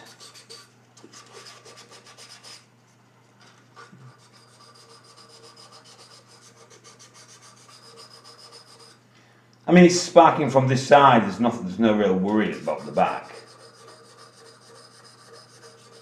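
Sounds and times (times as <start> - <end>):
abrasive rubbing on metal: 0.0 - 2.7, 3.8 - 9.0, 12.5 - 16.0.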